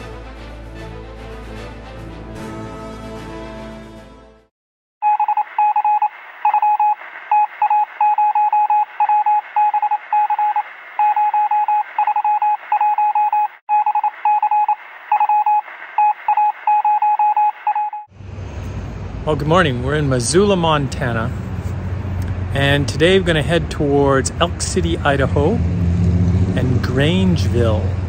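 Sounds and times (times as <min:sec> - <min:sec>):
morse code beeps: 0:05.0 - 0:18.1.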